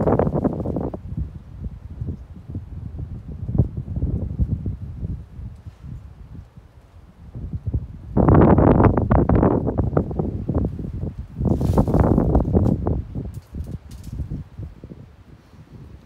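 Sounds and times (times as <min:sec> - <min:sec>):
wind buffeting microphone: 0:00.0 - 0:16.0
leaves rustling: 0:08.5 - 0:15.8.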